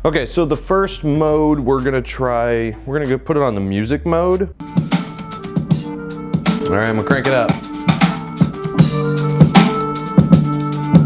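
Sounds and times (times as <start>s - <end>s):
hip hop beat on soundbar: 4.7s - 10.8s.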